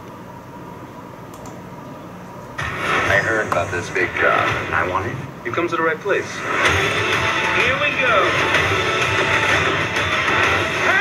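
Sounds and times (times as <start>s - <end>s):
low background hum: 0.0s - 11.0s
film trailer soundtrack: 2.6s - 11.0s.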